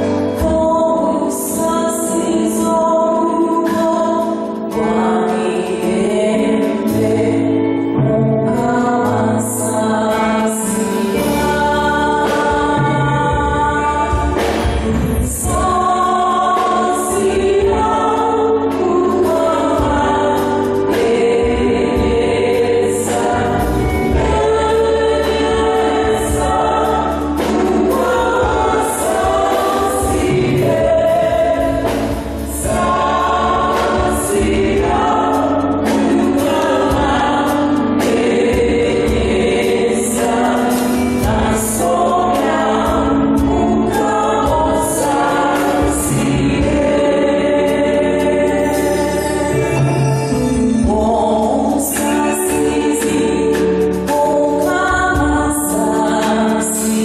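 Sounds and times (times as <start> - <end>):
choir singing a hymn: 0.0 - 57.0
musical accompaniment: 0.0 - 57.0
high percussion beat: 11.2 - 57.0.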